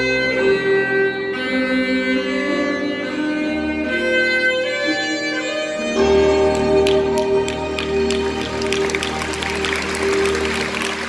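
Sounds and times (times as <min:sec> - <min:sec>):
saxophone and live band: 0:00.0 - 0:11.0
audience applause: 0:06.5 - 0:11.0.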